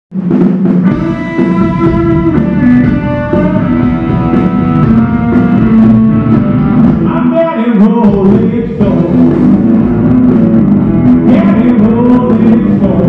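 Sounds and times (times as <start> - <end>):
drum kit: 0.1 - 13.0
rock band playing live: 0.1 - 13.0
electric guitars: 0.6 - 13.0.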